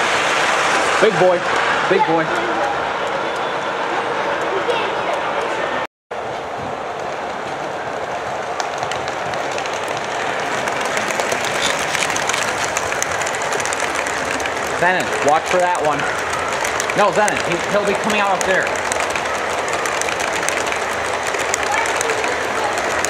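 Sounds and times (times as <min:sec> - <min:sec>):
crowd chatter: 0:00.9 - 0:23.0
model train wheels clattering on track: 0:06.9 - 0:23.0.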